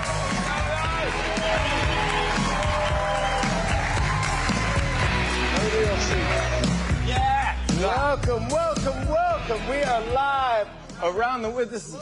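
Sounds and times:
audience cheering and applauding: 0:00.0 - 0:08.0
music playing: 0:00.0 - 0:12.0.

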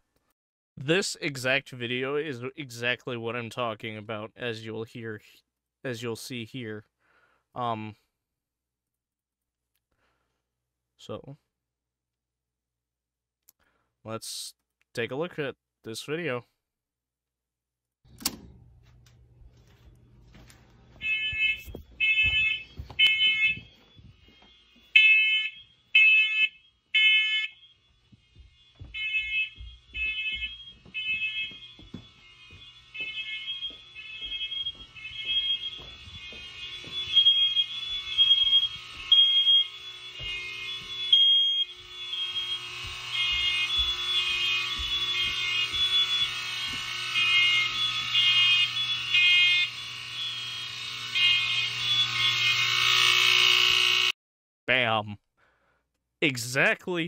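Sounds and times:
smoke alarms beeping: 0:19.6 - 0:54.2.

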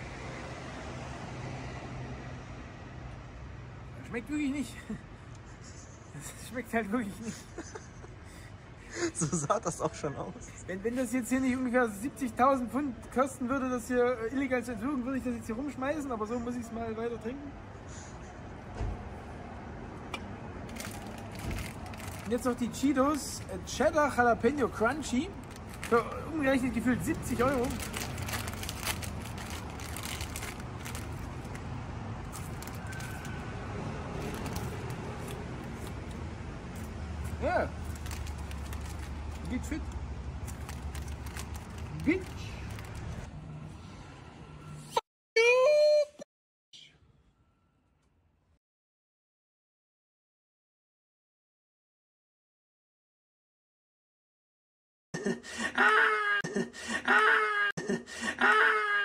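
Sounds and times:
city traffic rumble: 0:00.0 - 0:45.0
crisp packet crackling: 0:20.7 - 0:23.4, 0:25.3 - 0:31.6, 0:32.2 - 0:33.4, 0:34.1 - 0:36.1, 0:37.8 - 0:43.3.

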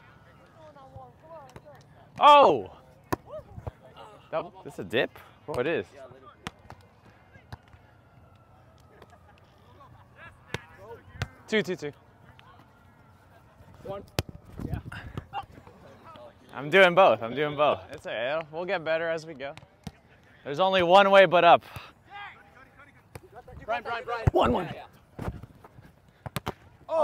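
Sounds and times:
players shouting: 0:20.6 - 0:24.9, 0:26.8 - 0:27.0
volleyball smacks: 0:26.2 - 0:26.6.

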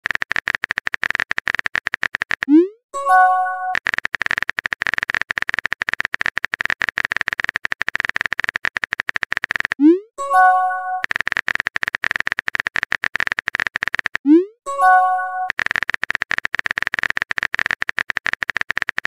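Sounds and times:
phone keyboard typing clicks: 0:00.0 - 0:19.0
message sent chime: 0:03.0 - 0:03.8, 0:09.8 - 0:11.0, 0:14.7 - 0:15.5.

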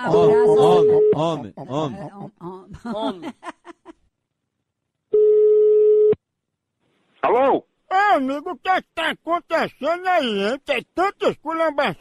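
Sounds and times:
telephone line beep: 0:05.2 - 0:06.2.

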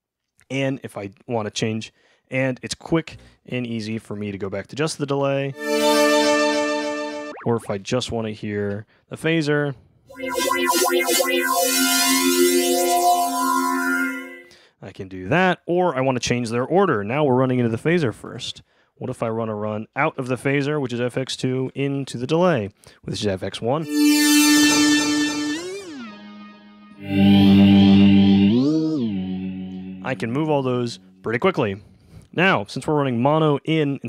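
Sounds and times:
synthesizer through phaser: 0:05.6 - 0:07.6, 0:10.1 - 0:14.5, 0:23.8 - 0:31.2.

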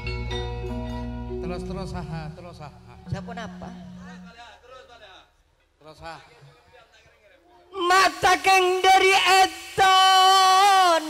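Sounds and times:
person singing into microphone: 0:07.7 - 0:11.0.

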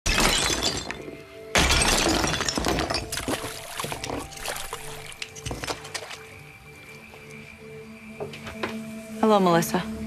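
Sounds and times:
brittle objects shattering: 0:00.1 - 0:06.0
background music: 0:00.1 - 0:10.0.

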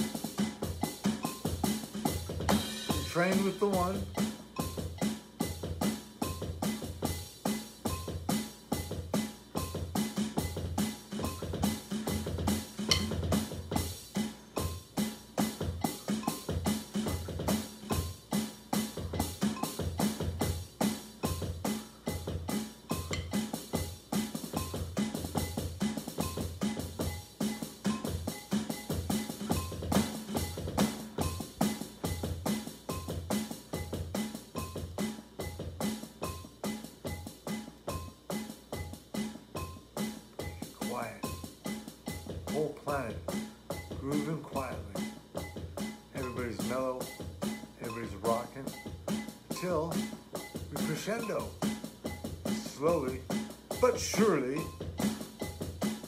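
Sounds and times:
drum kit groove: 0:00.0 - 0:56.0.

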